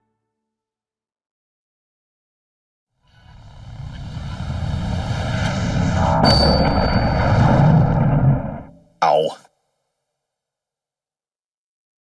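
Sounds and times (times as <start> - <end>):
low roar: 3.1 - 8.8.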